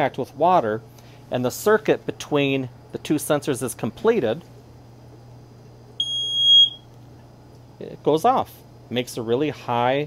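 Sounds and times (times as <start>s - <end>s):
high electronic alarm tone: 6.0s - 6.8s.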